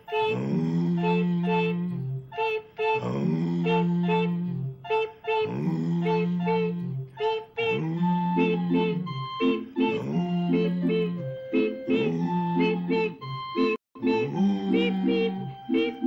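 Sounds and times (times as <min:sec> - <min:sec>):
short high beep notes: 0:08.3 - 0:16.0.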